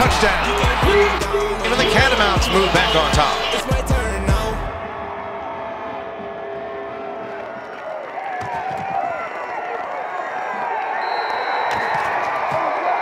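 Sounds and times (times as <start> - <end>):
stadium crowd cheering and shouting: 0.0 - 13.0.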